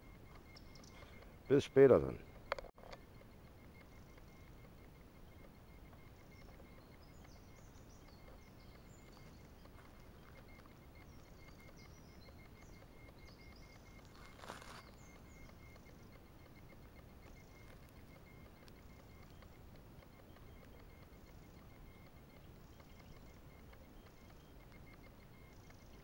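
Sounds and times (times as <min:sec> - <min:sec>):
faint high bird chirps: 0:00.0 - 0:26.0.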